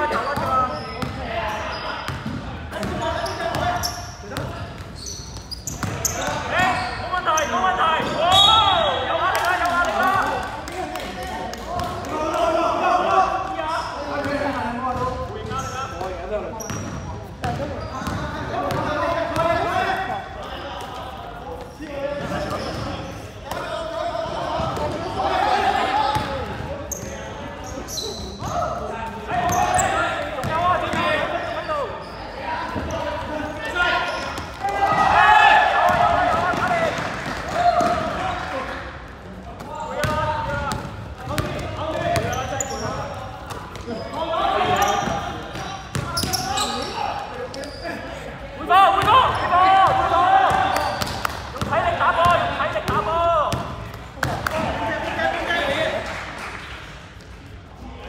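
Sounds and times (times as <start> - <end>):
basketball bouncing on court: 0.2 - 1.3, 2.0 - 6.8, 16.6 - 19.6, 26.1 - 26.8, 35.8 - 38.2, 40.0 - 44.0, 44.6 - 46.5, 49.0 - 54.7
players shouting in hall: 33.4 - 38.7, 48.6 - 53.5.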